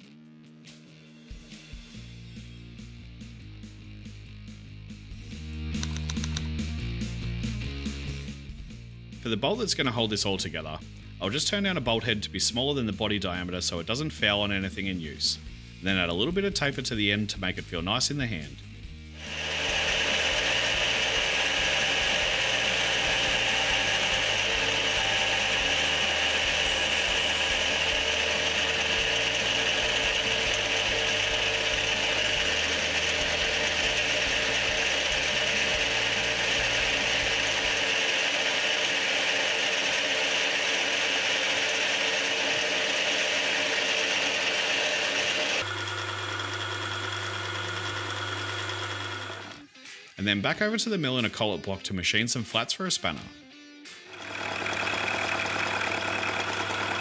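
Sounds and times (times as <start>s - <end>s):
metal lathe machining whine: 19.2s - 49.5s, 54.1s - 57.0s.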